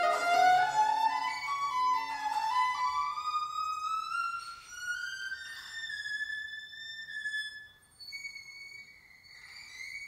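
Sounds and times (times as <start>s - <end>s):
violin glissando: 0.0s - 10.0s.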